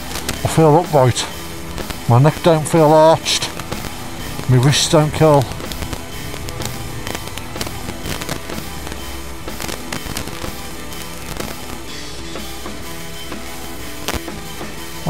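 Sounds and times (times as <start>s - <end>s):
wind buffeting microphone: 3.2s - 11.8s
motorcycle engine at low revs: 3.5s - 11.8s.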